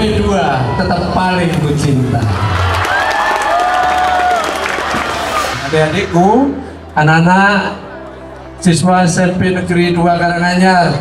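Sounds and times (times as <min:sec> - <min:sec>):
children cheering and clapping: 0:02.2 - 0:05.6.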